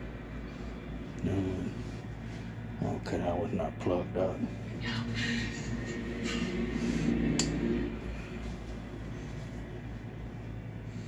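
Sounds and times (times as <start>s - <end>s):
low room tone hum: 0.0s - 11.0s
lamp switch clicking: 7.4s - 7.6s.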